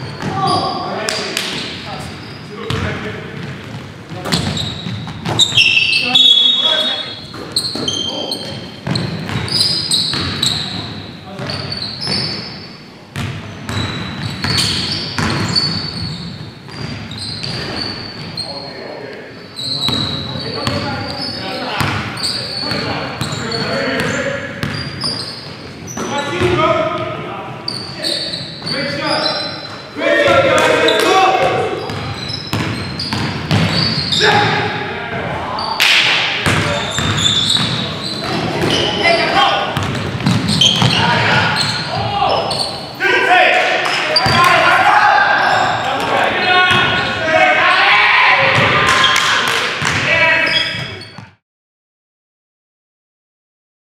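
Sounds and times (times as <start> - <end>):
sneaker squeaks: 0.0 - 34.8, 35.5 - 43.1, 43.8 - 47.3, 48.4 - 51.4
players calling out: 13.8 - 51.2
basketball bouncing on hardwood: 31.9 - 33.9, 36.4 - 38.8, 39.8 - 41.0.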